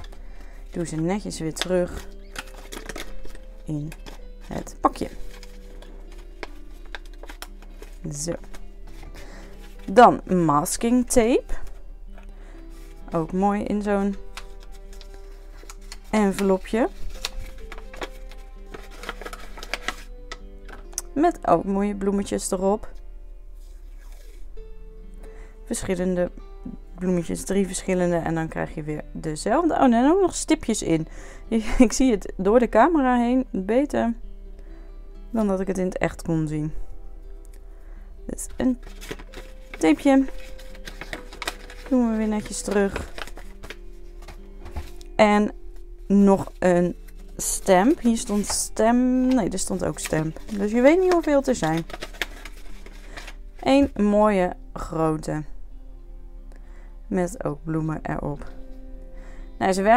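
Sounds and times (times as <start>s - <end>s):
paper envelope rustling: 0.0s - 10.3s, 11.4s - 21.0s, 23.6s - 24.5s, 38.4s - 45.1s, 46.1s - 54.0s
soft background music: 0.0s - 59.9s.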